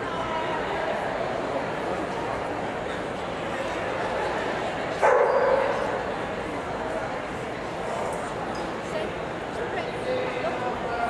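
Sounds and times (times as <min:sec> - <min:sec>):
crowd chatter: 0:00.0 - 0:11.0
dog barking: 0:05.0 - 0:05.8.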